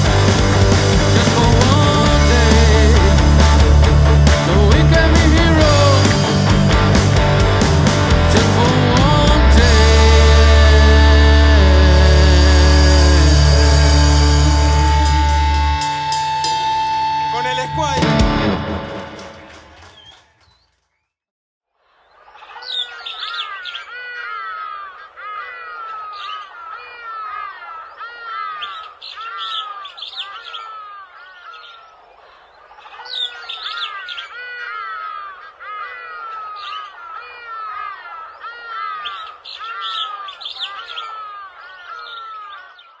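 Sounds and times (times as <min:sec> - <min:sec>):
birds chirping: 0:00.0 - 0:21.2, 0:21.8 - 0:43.0.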